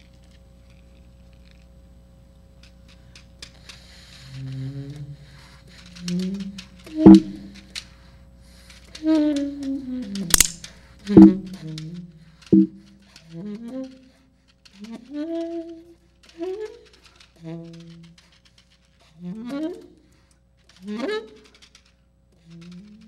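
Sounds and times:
sharp clicks: 0:08.7 - 0:14.9.

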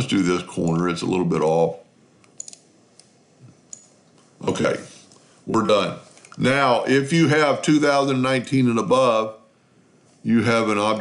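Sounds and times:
computer mouse clicks: 0:02.2 - 0:04.3.

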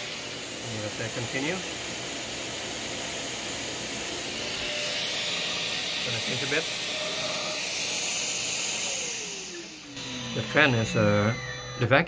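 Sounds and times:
dust extraction vacuum hissing: 0:00.0 - 0:12.0.

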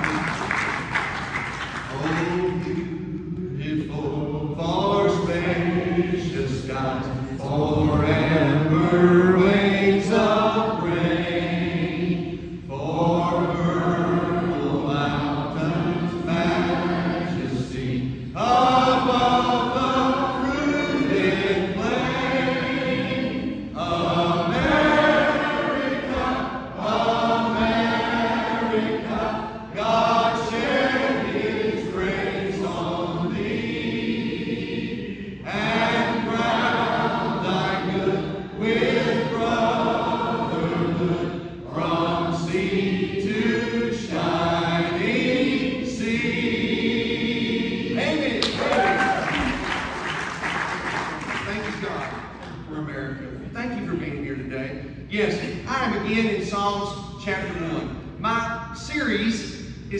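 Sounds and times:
congregation singing: 0:00.0 - 0:52.8.

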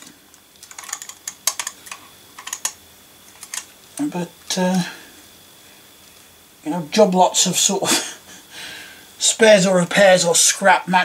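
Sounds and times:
toy vehicles clicking together: 0:00.6 - 0:02.8, 0:03.4 - 0:03.7.

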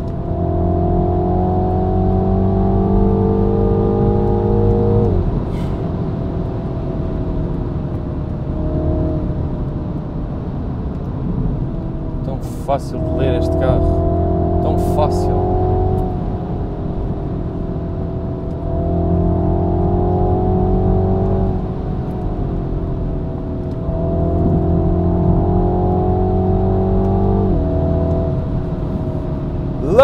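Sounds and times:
car engine under load: 0:00.0 - 0:30.0.

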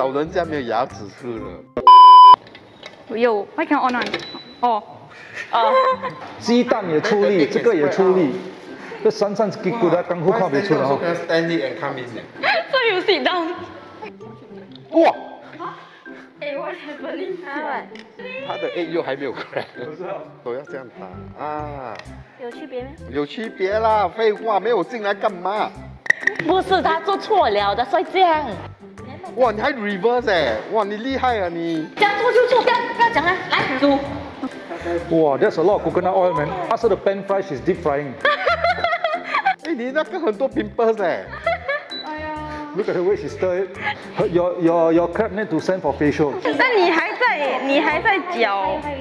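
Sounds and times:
censor bleep tone: 0:01.8 - 0:02.4.

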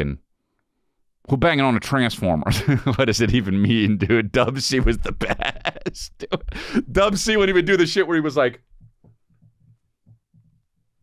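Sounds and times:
faint low thuds: 0:04.8 - 0:06.6.

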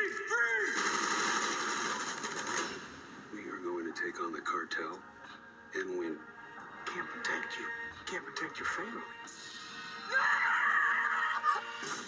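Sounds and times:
film dialogue: 0:00.0 - 0:12.0.

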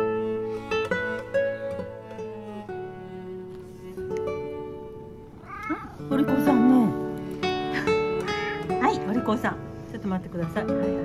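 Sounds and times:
acoustic guitar music: 0:00.0 - 0:11.0
cat meowing: 0:05.3 - 0:06.1.

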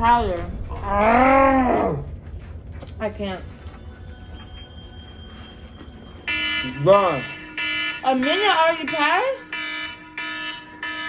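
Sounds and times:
electronic timer alarm beeping: 0:04.3 - 0:11.0.

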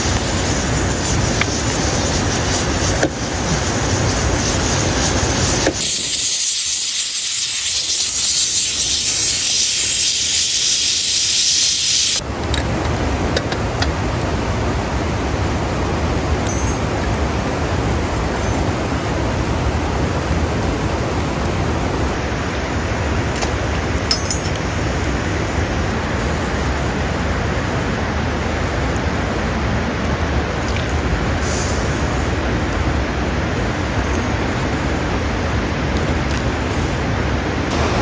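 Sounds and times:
pressure cooker steam hiss: 0:00.0 - 0:12.2, 0:31.4 - 0:32.4
steady rushing noise: 0:00.0 - 0:38.0.

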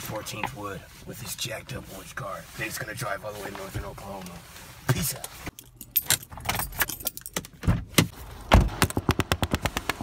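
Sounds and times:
loose objects rattling in a car: 0:00.0 - 0:08.1.

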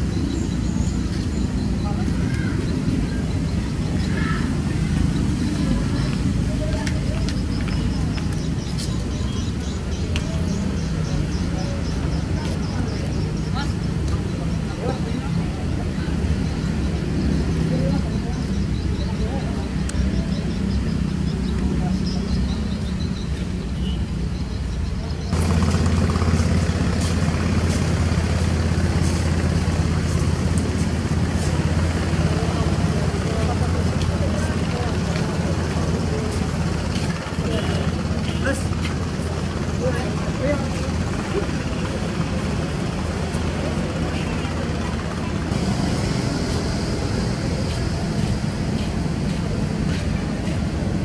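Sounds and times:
indistinct voices of passersby: 0:00.0 - 0:51.0
traffic hum: 0:00.0 - 0:51.0.

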